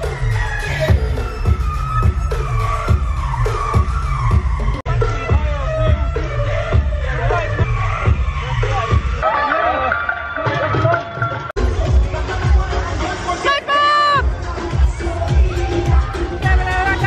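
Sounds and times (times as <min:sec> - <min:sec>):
dance music with heavy bass beat: 0:00.0 - 0:09.9, 0:11.6 - 0:17.0
crowd noise: 0:00.0 - 0:17.0.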